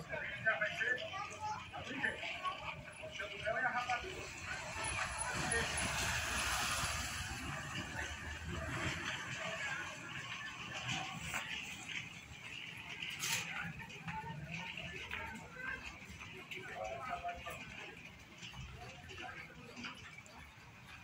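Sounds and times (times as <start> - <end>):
indistinct background voices: 0.0 - 21.0
outdoor noise haze: 0.0 - 21.0.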